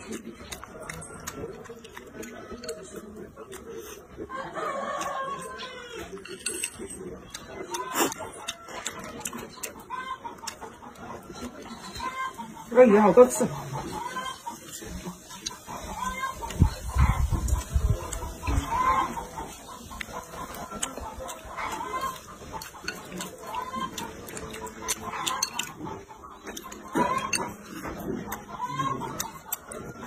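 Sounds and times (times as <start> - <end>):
chicken clucking: 0.0 - 30.0.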